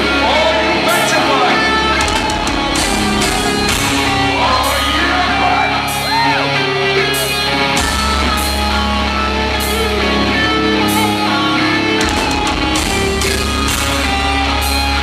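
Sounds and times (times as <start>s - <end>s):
heavy metal band playing live: 0.0s - 15.0s.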